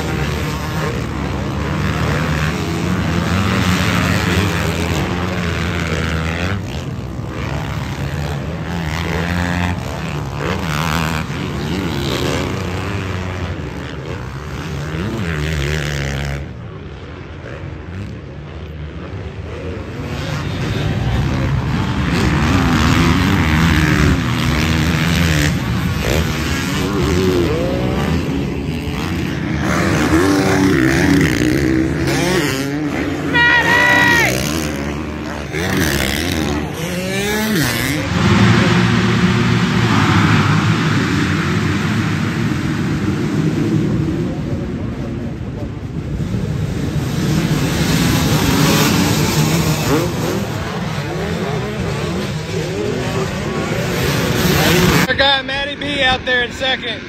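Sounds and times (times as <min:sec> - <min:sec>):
motocross bike engines revving: 0:00.0 - 0:57.0.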